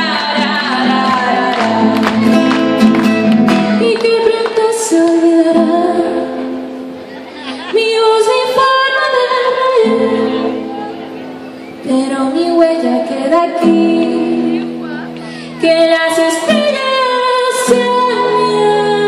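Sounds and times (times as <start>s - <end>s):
woman singing: 0.0s - 2.6s, 3.5s - 6.6s, 7.6s - 11.0s, 11.8s - 19.0s
acoustic guitar: 0.0s - 19.0s.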